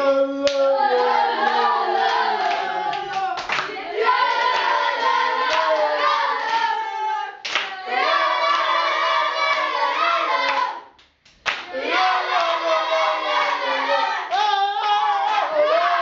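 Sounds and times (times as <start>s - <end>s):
boys singing a chant: 0.0s - 10.8s, 11.7s - 16.0s.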